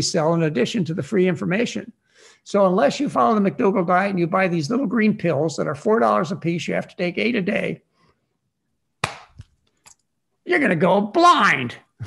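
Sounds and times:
sharp snap or knock: 9.0 - 9.5.

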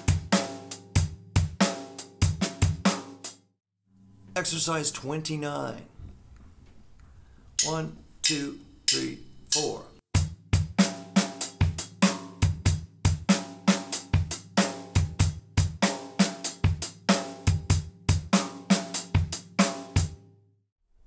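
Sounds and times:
drum kit playing a shuffle: 0.0 - 3.5, 7.6 - 20.2.

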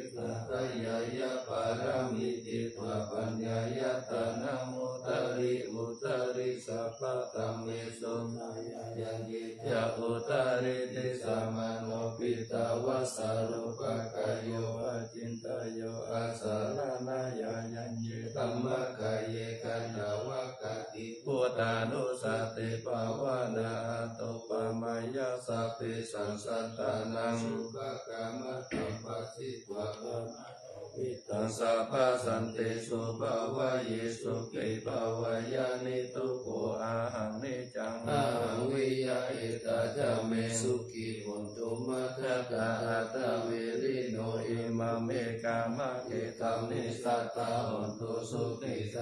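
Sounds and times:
many voices chanting: 0.0 - 49.0.

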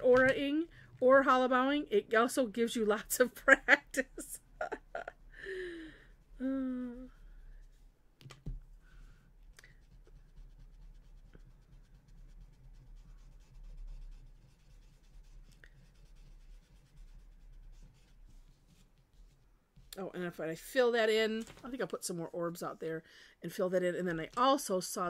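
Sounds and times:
pencil scratching on paper: 9.7 - 19.9.

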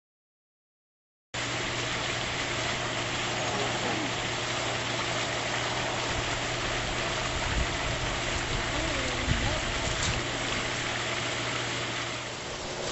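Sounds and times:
mechanical hum: 1.4 - 12.9.

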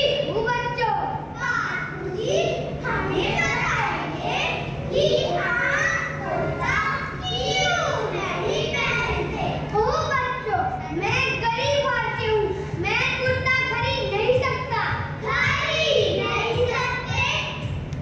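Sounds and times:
children reciting into microphones: 0.0 - 17.9.

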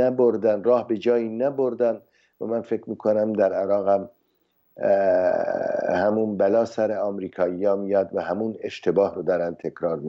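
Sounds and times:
man speaking: 0.0 - 4.1, 4.8 - 10.0.

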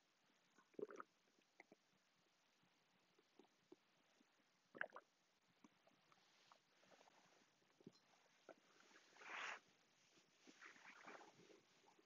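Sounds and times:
person swallowing: 0.7 - 1.8.

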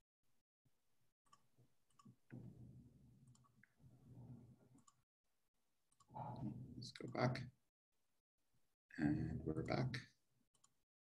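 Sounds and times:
computer mouse clicks: 3.2 - 3.8, 10.6 - 10.8
voice: 6.2 - 7.5, 9.0 - 10.1.

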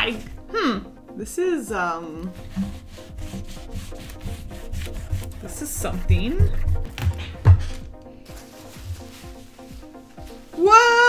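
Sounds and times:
eraser scrubbing a whiteboard: 2.2 - 6.9, 8.3 - 10.6.

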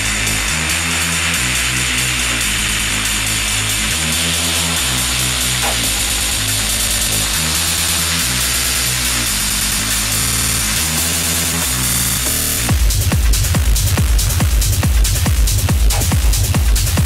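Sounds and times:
techno music: 0.0 - 17.0.

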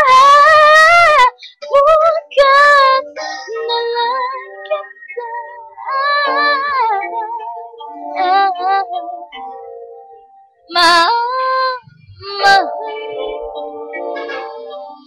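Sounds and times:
woman singing a ballad: 0.0 - 9.1, 10.7 - 14.9
karaoke backing track: 0.0 - 15.0.

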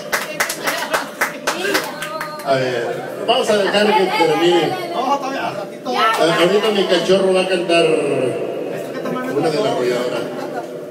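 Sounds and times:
hand clapping: 0.0 - 2.5
voices talking: 0.6 - 10.9.

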